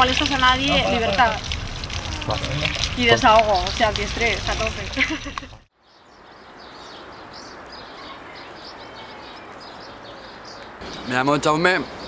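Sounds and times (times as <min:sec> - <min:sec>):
outdoor background sound: 0:00.0 - 0:12.0.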